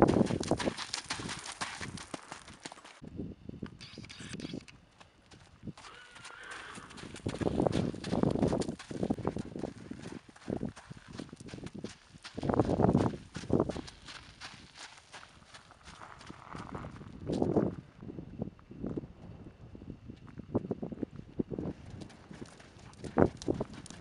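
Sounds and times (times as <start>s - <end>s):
horse hoofbeats on dirt and gravel: 0.0s - 3.0s, 4.9s - 17.8s, 21.5s - 24.0s.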